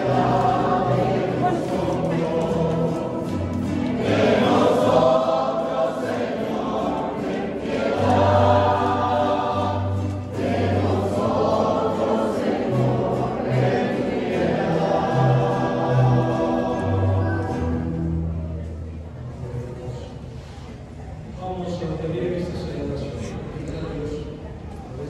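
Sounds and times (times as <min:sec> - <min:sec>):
congregation singing a hymn: 0:00.0 - 0:18.3.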